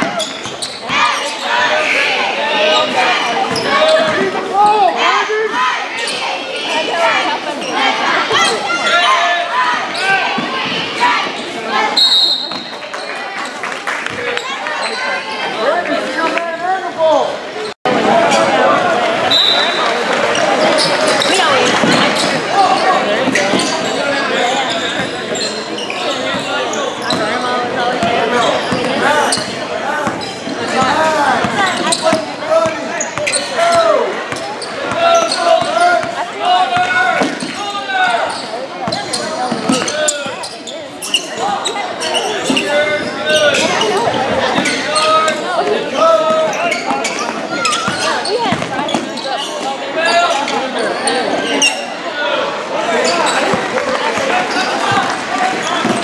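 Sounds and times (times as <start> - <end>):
people calling out: 0.0 - 12.8.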